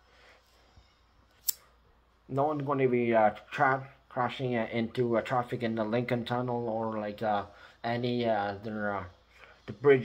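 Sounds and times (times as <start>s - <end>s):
sharp click: 1.4s - 1.7s.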